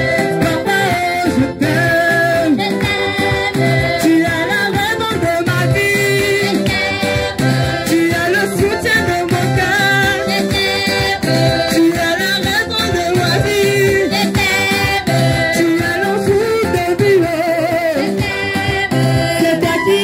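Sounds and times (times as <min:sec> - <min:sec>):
congregation singing worship song: 0:00.0 - 0:20.0.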